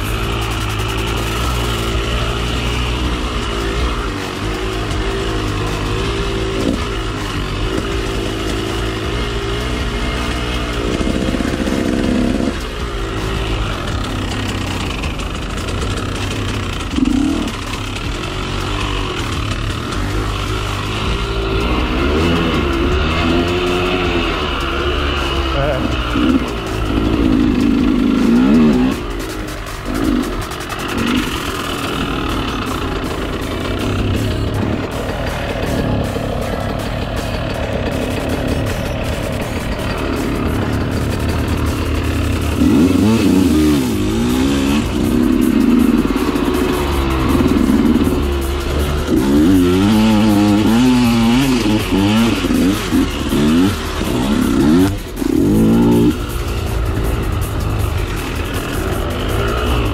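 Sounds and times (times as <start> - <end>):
two-stroke motorcycle engine revving: 0.0 - 59.9.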